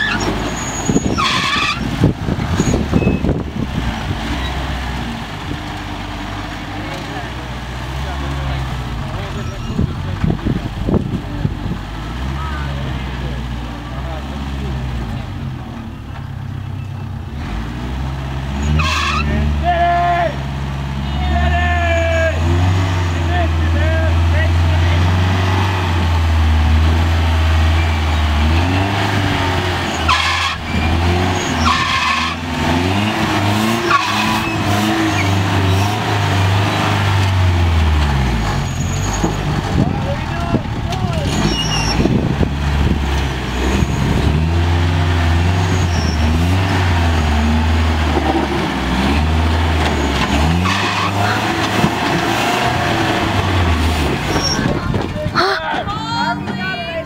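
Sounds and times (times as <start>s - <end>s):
engine revving under load: 0.0s - 56.9s.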